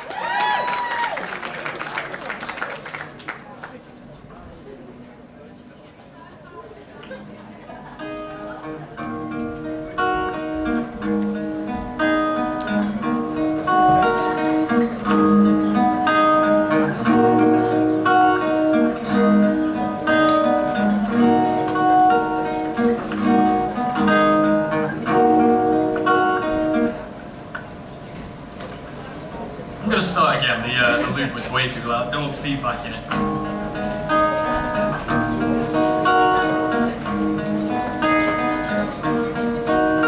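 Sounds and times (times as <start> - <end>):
looped acoustic guitar picking: 7.2 - 40.0.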